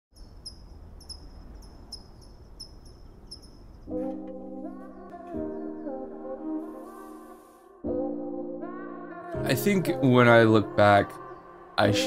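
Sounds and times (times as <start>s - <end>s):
cricket chirping: 0.2s - 3.9s.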